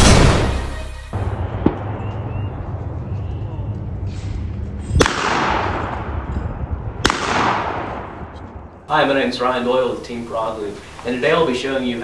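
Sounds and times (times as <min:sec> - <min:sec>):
shotgun shot echoing: 0:00.0 - 0:02.5, 0:05.0 - 0:06.2, 0:07.0 - 0:08.3.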